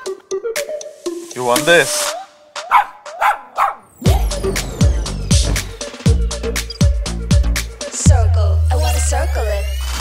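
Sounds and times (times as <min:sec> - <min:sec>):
dog barking: 0:02.7 - 0:03.9.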